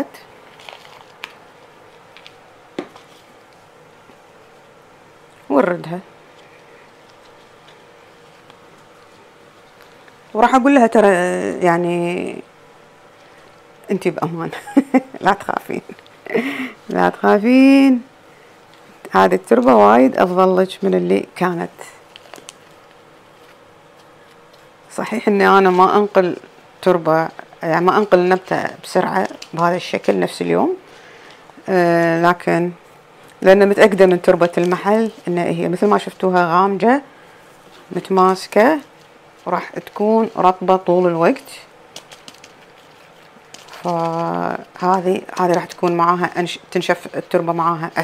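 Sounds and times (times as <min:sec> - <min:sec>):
faint room noise: 0:00.0 - 0:48.0
potting mix pressed by hand: 0:37.8 - 0:48.0.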